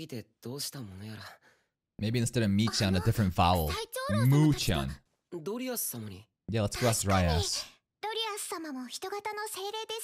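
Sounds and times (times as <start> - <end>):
cartoon character speaking: 2.6 - 5.0, 6.6 - 10.0
person speaking: 2.6 - 5.0, 6.5 - 7.7.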